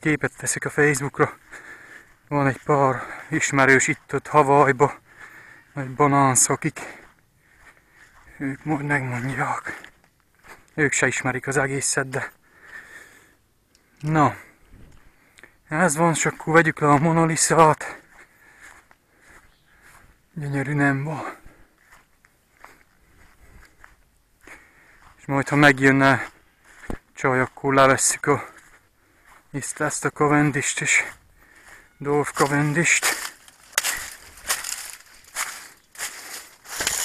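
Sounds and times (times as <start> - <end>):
rustling of plants: 0.0 - 13.0, 13.8 - 37.0
footsteps through grass: 0.0 - 13.1, 13.8 - 37.0
dry leaves rustling and crunching: 32.2 - 37.0.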